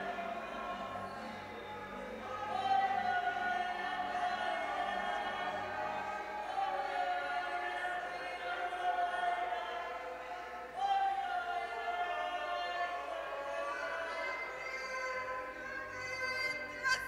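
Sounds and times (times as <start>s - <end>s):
choir singing sustained notes: 0.0s - 17.0s.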